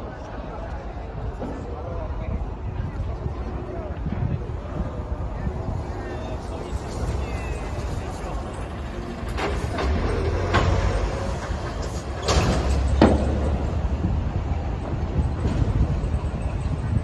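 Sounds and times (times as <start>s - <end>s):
fire rumbling: 2.0s - 17.0s.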